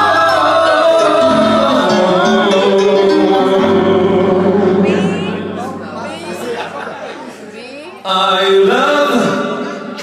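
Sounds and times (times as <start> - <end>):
people talking over microphones: 4.6 - 10.0.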